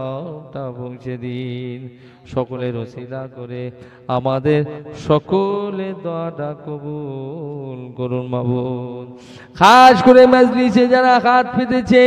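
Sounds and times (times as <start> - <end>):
man chanting into a microphone: 0.0 - 12.0.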